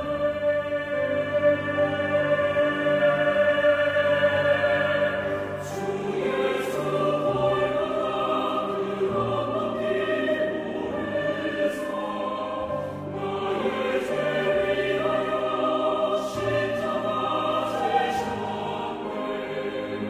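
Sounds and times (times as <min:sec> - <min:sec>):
choir singing: 0:00.0 - 0:20.0
sustained instrumental accompaniment: 0:00.0 - 0:20.0.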